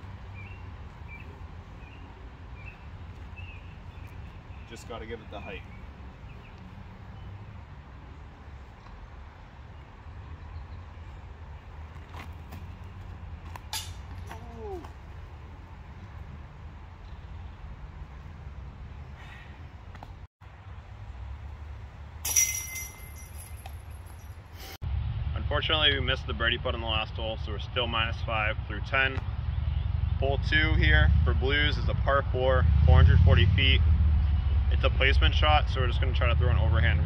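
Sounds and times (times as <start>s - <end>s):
low outdoor rumble: 0.0s - 37.0s
disc striking metal basket: 13.6s - 14.4s, 22.2s - 24.3s.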